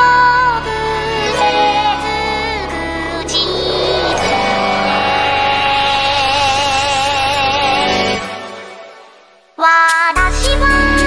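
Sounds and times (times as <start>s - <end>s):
backing music: 0.0s - 11.0s
singer holding high note: 0.5s - 8.3s.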